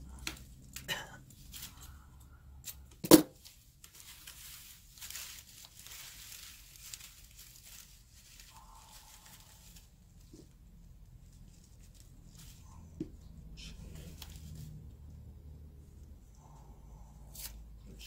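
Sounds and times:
paper rustling and crinkling: 0.2s - 2.0s, 2.6s - 14.9s.

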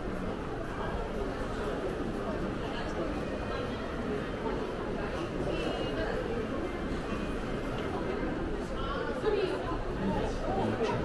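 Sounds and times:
background murmur: 0.0s - 11.0s.

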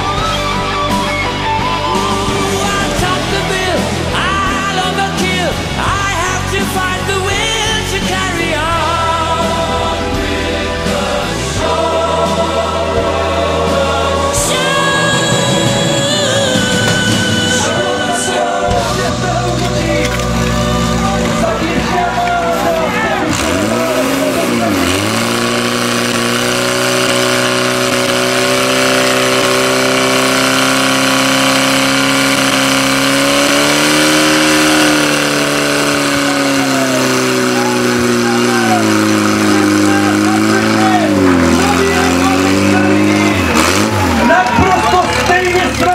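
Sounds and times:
pump engine running at high revs: 0.0s - 18.0s, 18.7s - 45.9s.

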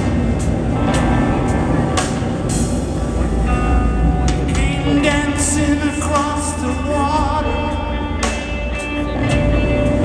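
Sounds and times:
distorted electric guitars and bass: 0.0s - 10.0s
person singing: 4.4s - 9.6s.

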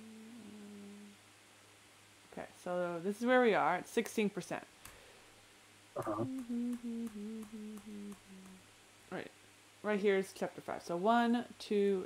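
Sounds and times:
person humming a tune: 0.0s - 1.2s, 6.0s - 8.6s.

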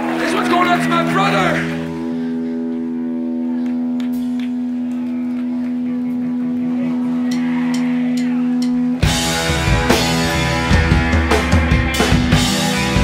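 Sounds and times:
electric guitar chord ringing: 0.0s - 13.0s
faint crowd noise: 0.0s - 13.0s.

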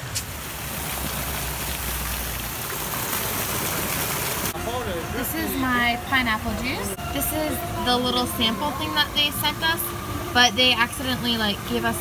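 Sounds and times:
splashing water hiss: 0.0s - 4.6s.

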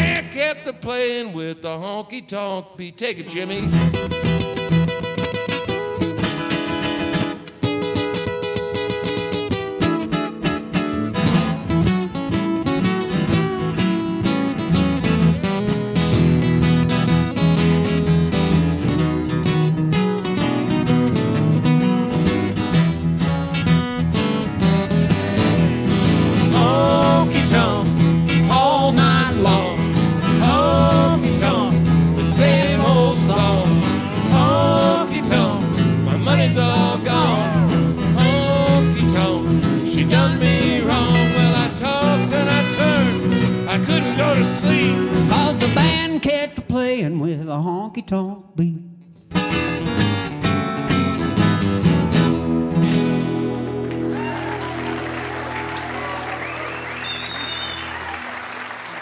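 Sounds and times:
country band playing: 0.0s - 0.5s, 3.3s - 46.4s, 49.3s - 59.0s
strummed acoustic guitars: 0.0s - 0.7s, 3.3s - 46.5s, 49.1s - 58.0s
bending lead guitar line: 3.3s - 46.0s, 49.3s - 59.0s.

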